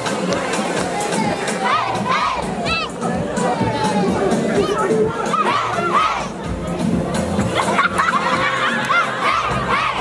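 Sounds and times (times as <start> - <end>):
children shouting and cheering: 0.0 - 6.5, 7.6 - 10.0.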